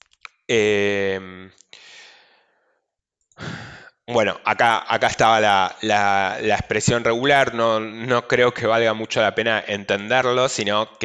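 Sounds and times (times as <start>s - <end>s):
man breathing into microphone: 1.7s - 2.7s, 3.4s - 4.0s.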